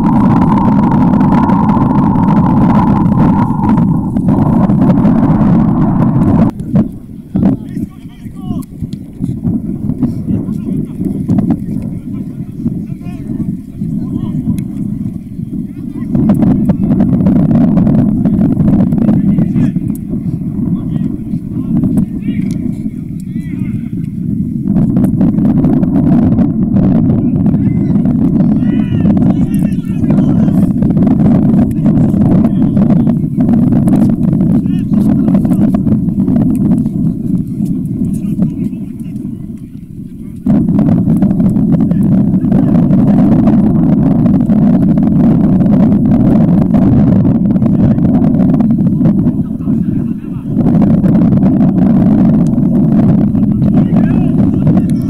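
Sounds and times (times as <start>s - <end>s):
low crowd rumble: 0.0s - 55.0s
wind buffeting microphone: 0.0s - 55.0s
faint players shouting: 27.6s - 30.6s.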